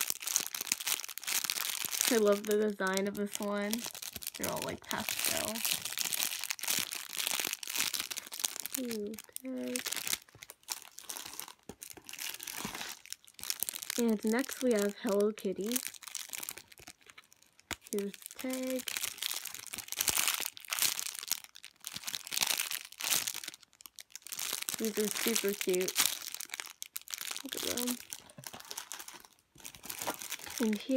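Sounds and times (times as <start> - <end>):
plastic bag crinkling: 0.0 - 30.9.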